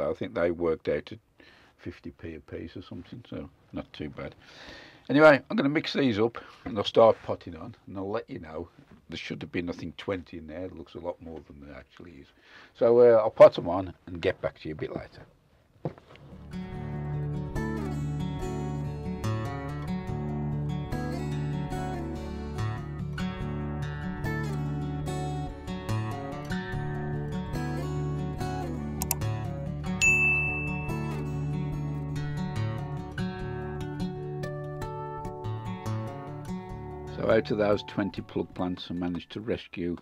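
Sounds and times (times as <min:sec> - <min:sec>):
plucked guitar-like music: 0:16.2 - 0:39.3
click: 0:29.0 - 0:29.2
high bell-like ding: 0:30.0 - 0:31.3.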